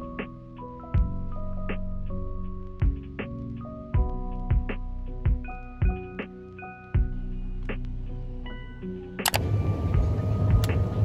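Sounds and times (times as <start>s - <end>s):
faint background music: 0.0s - 11.0s
low rumbling shop ambience: 7.0s - 11.0s
clicks: 9.2s - 9.5s.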